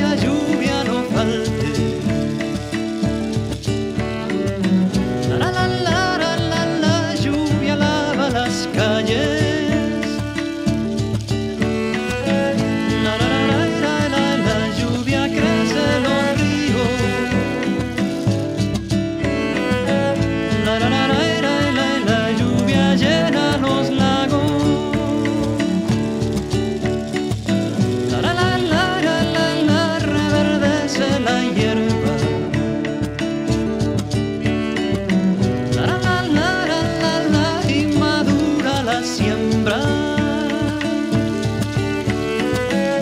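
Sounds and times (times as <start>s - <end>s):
sustained musical accompaniment: 0.0s - 43.0s
bowed string vibrato melody: 11.6s - 18.3s.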